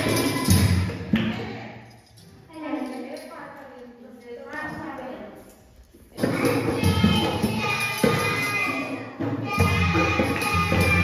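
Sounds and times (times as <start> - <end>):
hand claps: 0.0 - 1.5, 10.2 - 11.0
children singing: 0.0 - 1.7, 6.1 - 11.0.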